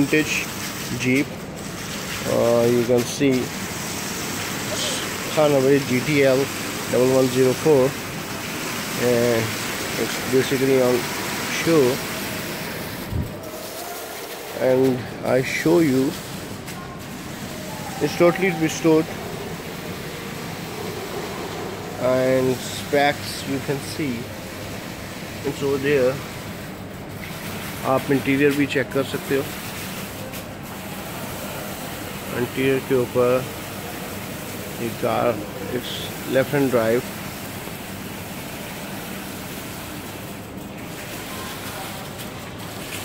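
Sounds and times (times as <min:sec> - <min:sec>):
room ambience: 0:00.0 - 0:28.6.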